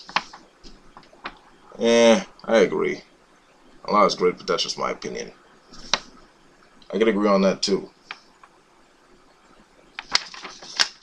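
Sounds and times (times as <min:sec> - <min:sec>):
paper crackling: 0:00.0 - 0:01.4, 0:10.0 - 0:11.0.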